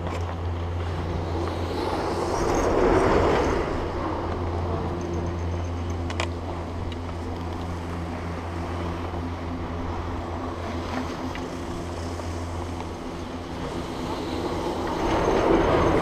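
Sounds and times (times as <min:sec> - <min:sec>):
chairlift machinery humming: 0:00.0 - 0:16.0
rush of noise: 0:00.0 - 0:16.0.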